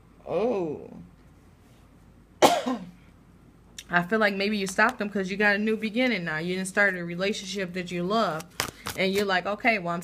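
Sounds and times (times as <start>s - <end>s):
woman coughing: 2.4s - 3.0s.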